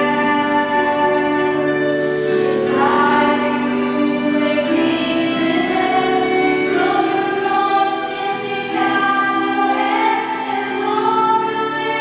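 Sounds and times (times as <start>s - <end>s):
string ensemble: 0.0s - 12.0s
women singing a classical duet: 0.0s - 12.0s.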